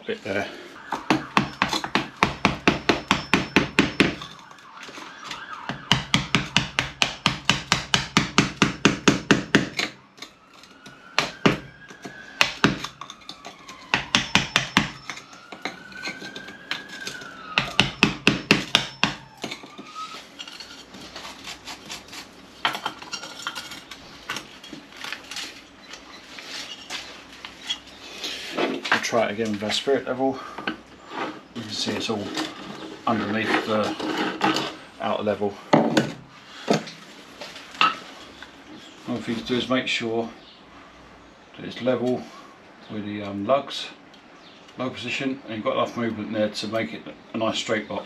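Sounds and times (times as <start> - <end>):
distant siren: 0.1 - 7.2, 8.7 - 21.1
hammer striking chisel: 1.0 - 4.4, 5.3 - 10.3, 11.2 - 13.2, 13.9 - 19.9.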